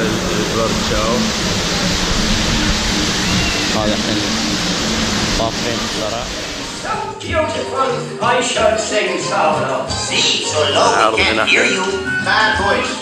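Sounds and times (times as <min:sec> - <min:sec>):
waterfall splashing into pool: 0:00.0 - 0:07.0.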